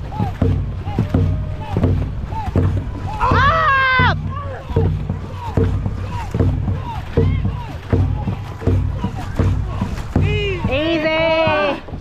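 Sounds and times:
paddles splashing: 0.0 - 12.0
crew long shout: 0.1 - 9.2.

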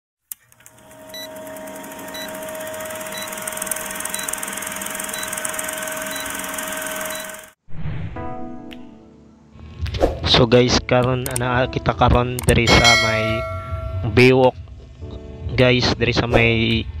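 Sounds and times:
film projector whir: 0.3 - 7.6.

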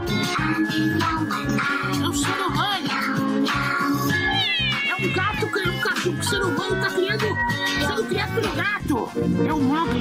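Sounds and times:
background music with steady beat: 0.0 - 10.0
cat meowing: 4.1 - 6.4.

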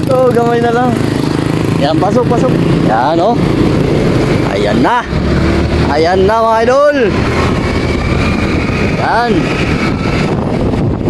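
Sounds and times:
motorcycle engine: 0.0 - 11.0
wind buffeting microphone: 0.0 - 11.0
faint rising whine: 1.9 - 11.0.

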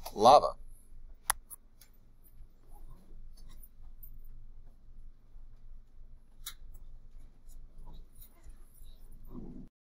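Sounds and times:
faint room hum: 0.0 - 9.7
computer mouse clicks: 1.2 - 2.0, 6.4 - 6.9
soft rustle: 1.7 - 9.7.

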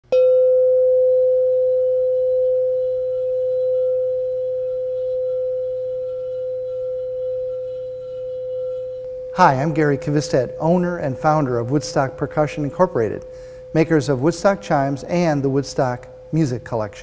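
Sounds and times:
metal tone bar ringing: 0.1 - 16.3.

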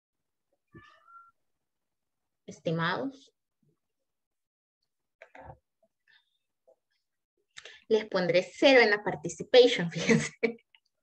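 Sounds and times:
faint high-pitched call: 0.7 - 1.4.

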